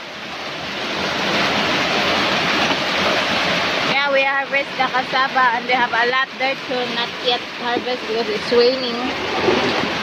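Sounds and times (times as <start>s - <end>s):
heavy rain falling: 0.0s - 10.0s.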